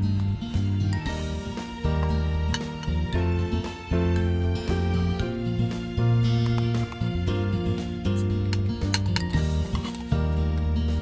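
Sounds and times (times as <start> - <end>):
background music: 0.0 - 11.0
metal spoon clinking on metal tin: 8.5 - 10.1.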